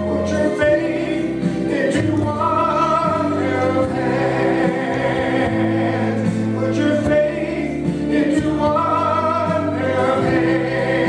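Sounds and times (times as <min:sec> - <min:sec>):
choir backing voices: 0:00.0 - 0:11.0
man singing: 0:00.0 - 0:11.0
musical accompaniment: 0:00.0 - 0:11.0.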